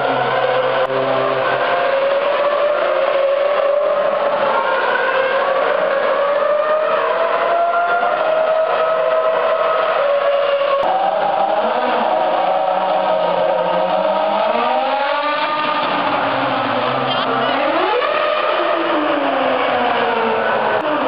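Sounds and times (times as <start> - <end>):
racing car engines: 0.0 - 21.0.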